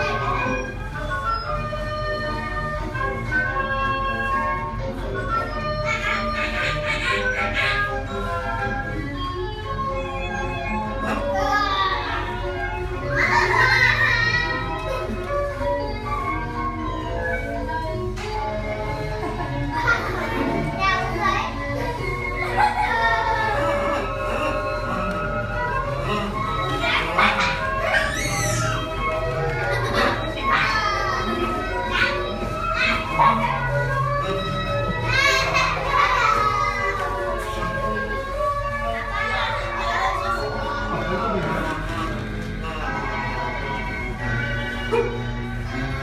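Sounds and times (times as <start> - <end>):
background music: 0.0 - 46.0
children's voices: 0.0 - 46.0
children shouting and squealing: 19.7 - 25.2, 25.8 - 34.2, 35.0 - 37.7.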